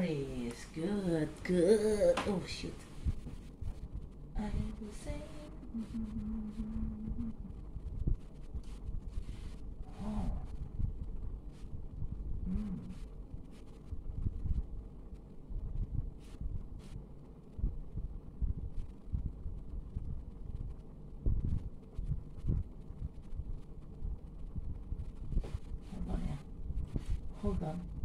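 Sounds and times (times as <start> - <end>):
low uneven rumbling: 0.0 - 28.0
person humming: 4.6 - 7.6, 12.4 - 13.0.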